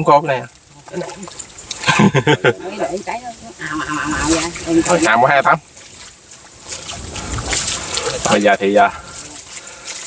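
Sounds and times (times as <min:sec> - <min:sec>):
people talking indistinctly: 0:00.0 - 0:05.7
water splashing: 0:00.0 - 0:10.0.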